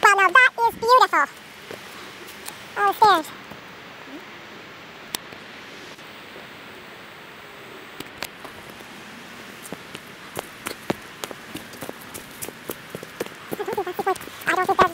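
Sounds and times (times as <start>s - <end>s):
person speaking: 0.0s - 1.3s, 2.8s - 3.4s, 13.4s - 14.9s
steady rain hiss: 0.0s - 14.9s.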